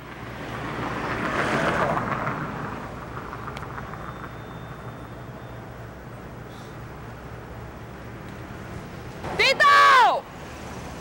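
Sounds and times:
vehicle passing: 0:00.0 - 0:11.0.

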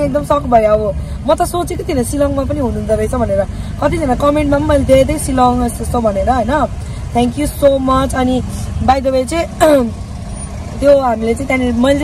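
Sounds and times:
woman talking: 0:00.0 - 0:10.0, 0:10.8 - 0:12.0.

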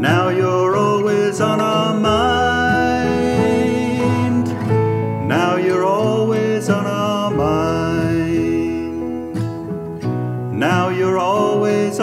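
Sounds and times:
person singing: 0:00.0 - 0:09.7, 0:10.5 - 0:12.0
acoustic guitar: 0:00.0 - 0:12.0.

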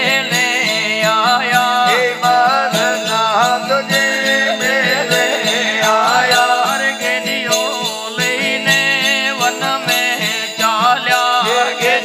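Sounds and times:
man singing devotional song: 0:00.0 - 0:12.0
hand cymbals jingling: 0:00.3 - 0:11.9
lute drone: 0:04.4 - 0:07.0.

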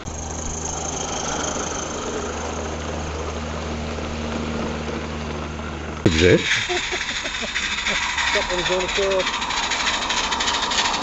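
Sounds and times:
steam locomotive hissing: 0:06.1 - 0:11.0.

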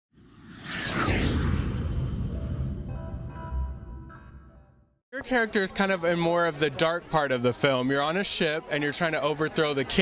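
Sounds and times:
whoosh with falling sweep: 0:00.2 - 0:03.5
deep rumble: 0:00.5 - 0:04.2.

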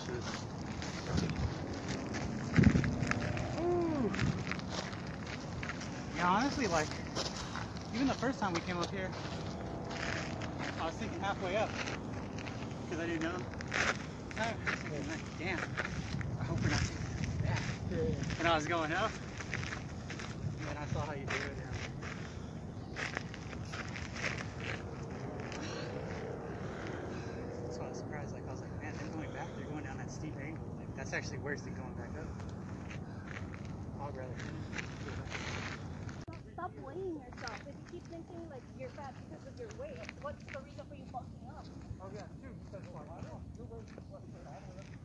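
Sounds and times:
footsteps on dirt trail: 0:00.0 - 0:27.4, 0:32.2 - 0:36.5, 0:37.2 - 0:45.0
steady low rumble: 0:00.0 - 0:36.4
outdoor background noise: 0:00.0 - 0:45.0.

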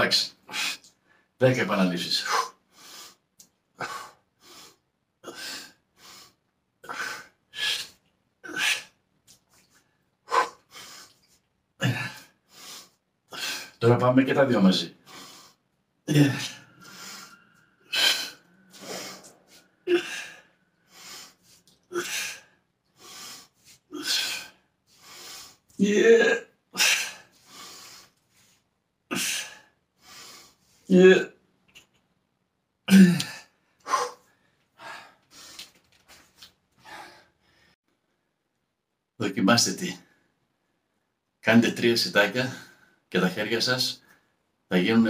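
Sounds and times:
man breathing hard: 0:02.3 - 0:03.2, 0:03.8 - 0:09.0, 0:11.8 - 0:13.8, 0:15.0 - 0:25.8, 0:26.8 - 0:28.5, 0:29.1 - 0:30.8, 0:33.2 - 0:35.8, 0:36.8 - 0:37.8
man breathing forcefully: 0:15.0 - 0:15.6, 0:16.2 - 0:25.7, 0:26.8 - 0:28.2.

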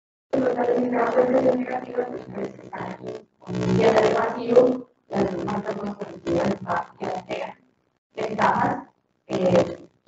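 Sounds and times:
woman talking into microphone: 0:00.4 - 0:03.0, 0:03.8 - 0:07.5, 0:08.2 - 0:09.8.

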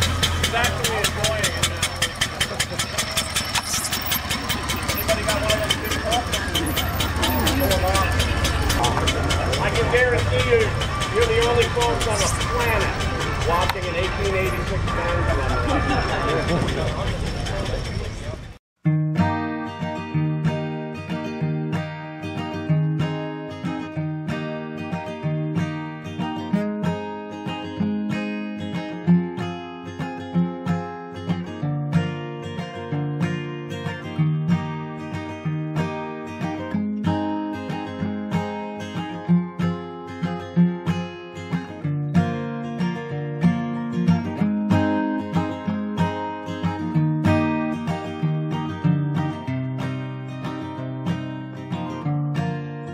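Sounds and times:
vehicle running outdoors: 0:00.0 - 0:18.6, 0:19.2 - 0:52.9
acoustic guitar music: 0:00.0 - 0:52.9.

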